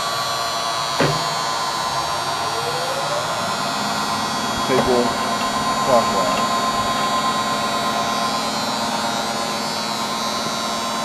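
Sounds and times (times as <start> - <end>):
surface grinder humming and whining: 0.0 - 11.0.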